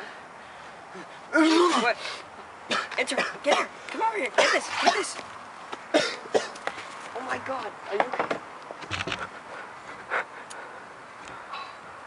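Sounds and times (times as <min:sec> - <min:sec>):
young man coughing: 0:02.7 - 0:03.7, 0:04.4 - 0:05.2, 0:05.9 - 0:06.6.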